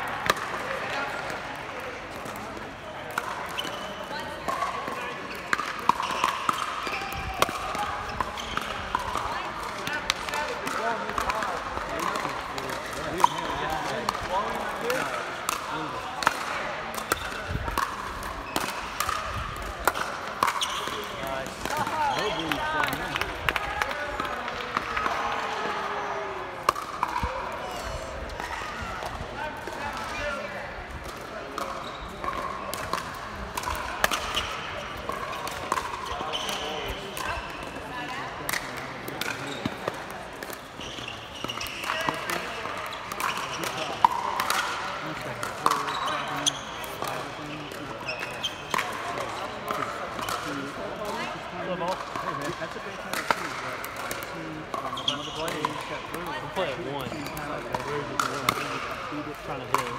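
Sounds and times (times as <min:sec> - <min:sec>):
people talking in background: 0:00.0 - 0:59.9
paddles hitting plastic balls: 0:04.5 - 0:25.2, 0:26.6 - 0:27.6, 0:30.9 - 0:56.2.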